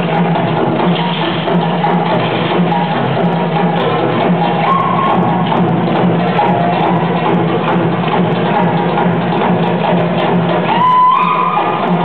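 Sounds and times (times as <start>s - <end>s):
hand drums beating: 0.0s - 12.0s.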